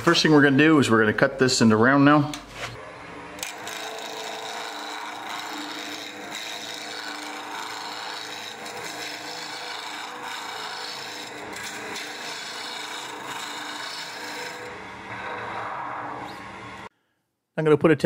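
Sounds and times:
wood lathe running: 0:03.1 - 0:15.7
turning tool scraping wood: 0:03.4 - 0:15.6.

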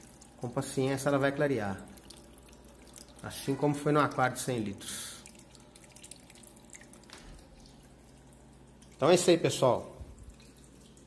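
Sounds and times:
low steady hum: 0:00.0 - 0:11.0
water trickling and dripping: 0:00.0 - 0:11.0.

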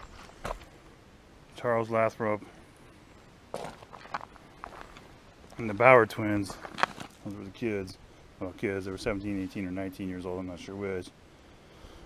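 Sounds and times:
footsteps on gravel: 0:00.0 - 0:00.7, 0:03.5 - 0:07.6.

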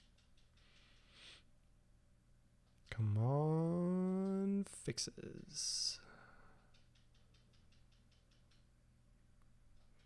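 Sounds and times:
run of faint clicks: 0:06.6 - 0:08.7.

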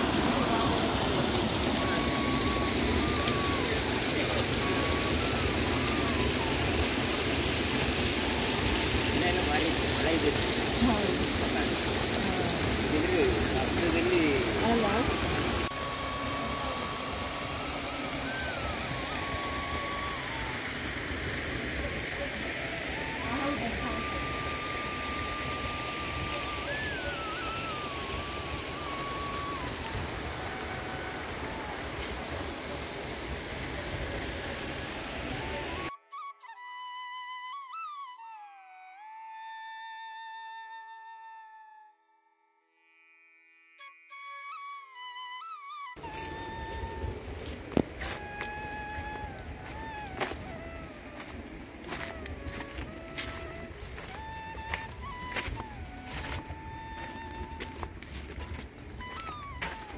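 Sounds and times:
water running and gurgling: 0:00.0 - 0:35.8
outdoor ambience: 0:00.0 - 0:36.0, 0:46.0 - 0:59.9.

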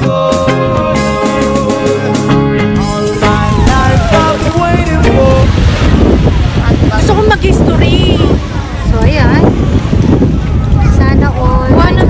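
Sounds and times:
wind buffeting microphone: 0:02.9 - 0:12.0
small waves breaking on shore: 0:03.3 - 0:11.0.

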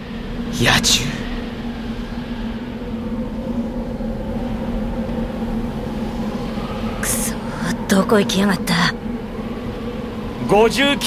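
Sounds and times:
low drone with hum: 0:00.0 - 0:11.0.

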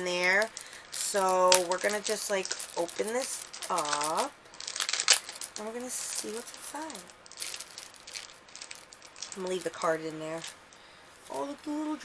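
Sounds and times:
packaging rustling and crinkling: 0:00.0 - 0:11.9.

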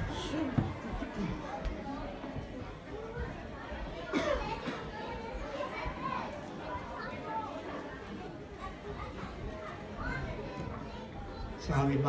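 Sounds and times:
children's voices: 0:00.0 - 0:11.6
indistinct chatter of people: 0:00.0 - 0:12.0.

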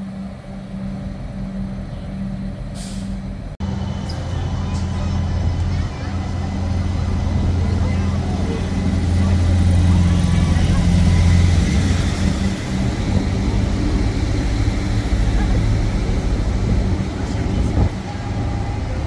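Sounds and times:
train engine droning: 0:00.0 - 0:19.0.

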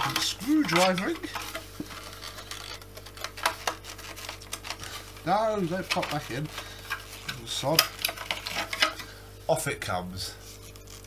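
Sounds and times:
plastic parts rustling and scraping: 0:00.0 - 0:09.2.

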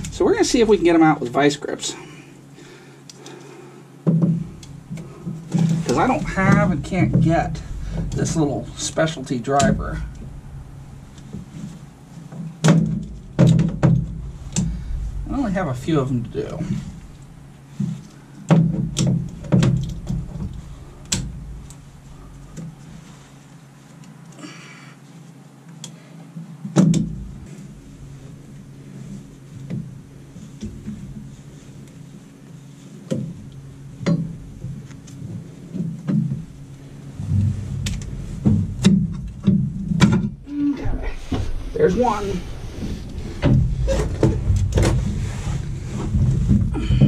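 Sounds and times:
heavy thumps: 0:04.0 - 0:23.2, 0:33.1 - 0:47.0
clothing rustling: 0:40.4 - 0:46.8.

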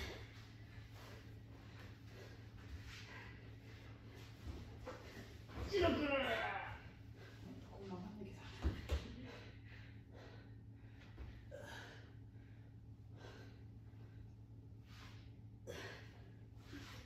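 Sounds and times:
rustling of clothes and feet: 0:00.0 - 0:09.2.

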